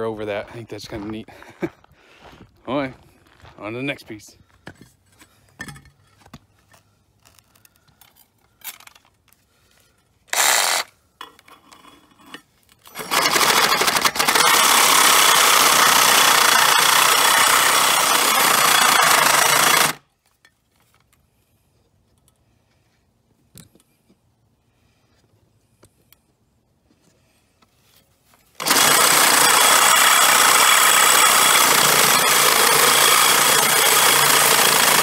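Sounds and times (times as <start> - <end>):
reciprocating saw cutting steel pipe: 10.3 - 10.9, 12.9 - 20.0, 28.6 - 35.0.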